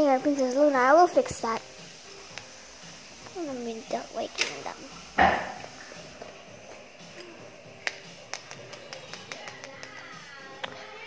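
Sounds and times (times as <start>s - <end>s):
faint background music: 0.0s - 11.0s
plastic toys clicking on tile: 7.9s - 10.1s.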